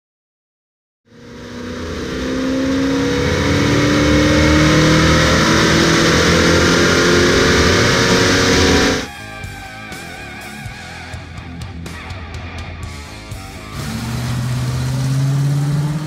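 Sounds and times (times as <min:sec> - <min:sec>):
car engine under load: 0:01.1 - 0:09.1, 0:13.7 - 0:16.0.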